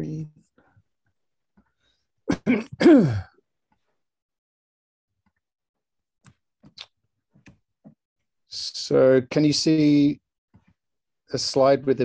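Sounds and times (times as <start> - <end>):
man clearing his throat: 2.3 - 3.4.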